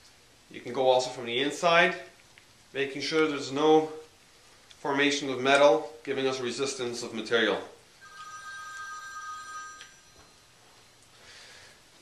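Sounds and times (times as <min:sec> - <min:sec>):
electronic two-tone ring: 0:08.0 - 0:10.6.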